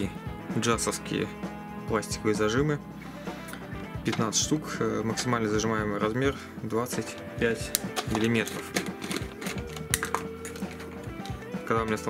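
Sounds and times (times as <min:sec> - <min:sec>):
plastic clamps clattering: 0:07.7 - 0:11.4
plastic jar lid twisting off: 0:07.7 - 0:11.4.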